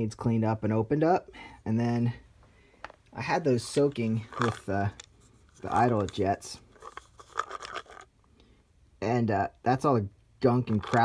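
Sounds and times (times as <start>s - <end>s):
scratching and clicking in plastic cup: 3.6s - 8.1s, 10.6s - 11.0s.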